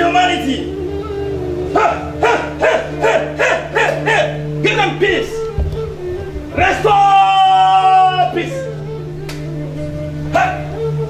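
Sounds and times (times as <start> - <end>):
background music: 0.0 - 11.0
person calling out: 6.4 - 8.8.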